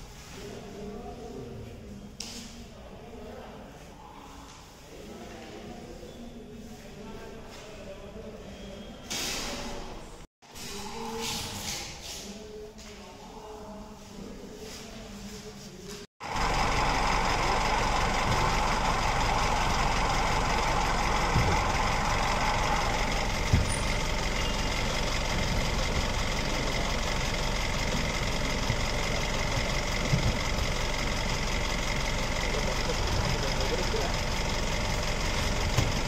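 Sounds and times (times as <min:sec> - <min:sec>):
bus engine idling: 0:16.2 - 0:36.0.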